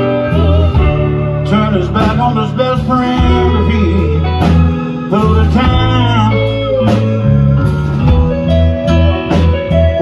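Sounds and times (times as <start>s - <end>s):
bass and drums: 0.0s - 10.0s
electric guitar lead line: 0.0s - 10.0s.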